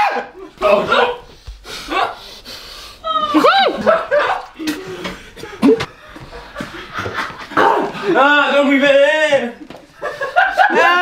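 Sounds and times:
people whimpering and gasping: 0:00.3 - 0:06.9.

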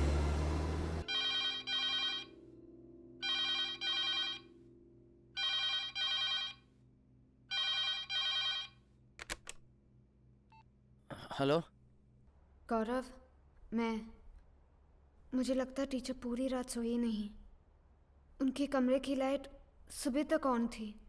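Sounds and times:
telephone ringing: 0:01.1 - 0:02.4, 0:03.2 - 0:04.7, 0:05.4 - 0:06.7, 0:07.5 - 0:08.8.

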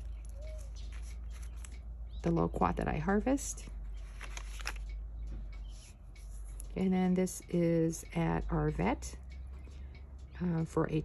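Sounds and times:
fingers touching paper pages: 0:00.0 - 0:01.9, 0:04.0 - 0:05.0
low steady hum: 0:00.0 - 0:11.0
light ticks: 0:04.0 - 0:11.0.

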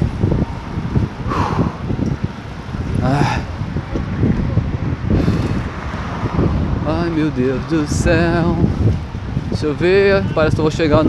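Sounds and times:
passing road traffic: 0:00.0 - 0:11.0
wind buffeting microphone: 0:00.0 - 0:11.0.

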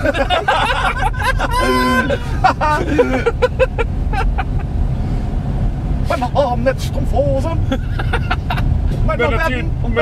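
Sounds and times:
person laughing: 0:00.0 - 0:04.6
car road and engine rumble: 0:00.0 - 0:10.0.

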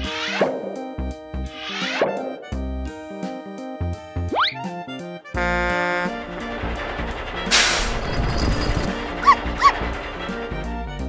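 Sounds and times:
background music: 0:00.0 - 0:11.0
cartoon dog barks: 0:09.2 - 0:09.8.

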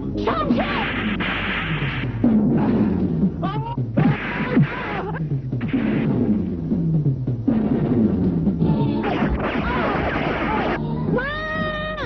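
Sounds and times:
dramatic film music: 0:00.0 - 0:11.8.

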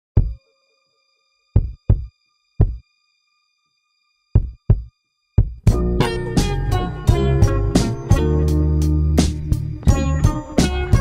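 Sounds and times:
deep kick drum thumps: 0:00.2 - 0:00.4, 0:01.6 - 0:02.8, 0:04.4 - 0:06.2
faint steady high tone: 0:00.3 - 0:01.5.

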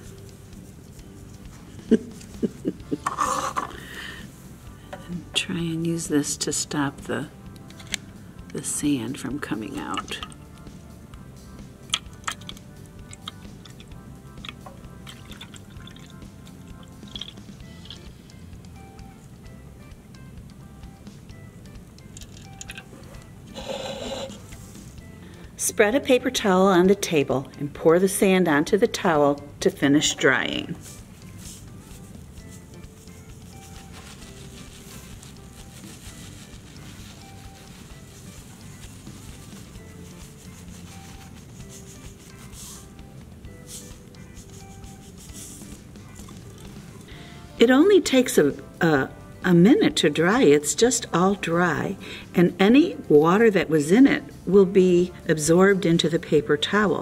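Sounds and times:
soft background music: 0:00.0 - 0:57.0
water pouring into plastic cup: 0:15.0 - 0:16.3
sand pouring onto paper: 0:33.6 - 0:39.2.

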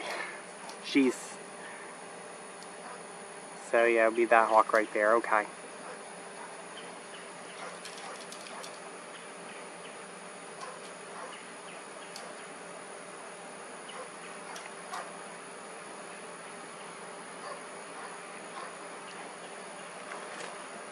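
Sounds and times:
insects buzzing: 0:00.0 - 0:20.9
faint small ticks: 0:12.0 - 0:12.5.

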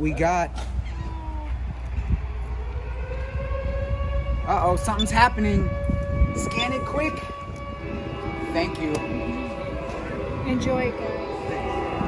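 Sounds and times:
wind rumble on microphone: 0:00.0 - 0:12.0
siren wailing: 0:02.0 - 0:12.0.

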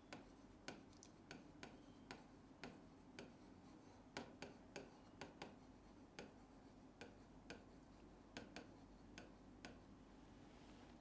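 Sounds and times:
marker tapping on whiteboard: 0:00.0 - 0:09.9
low room hum: 0:00.0 - 0:11.0.

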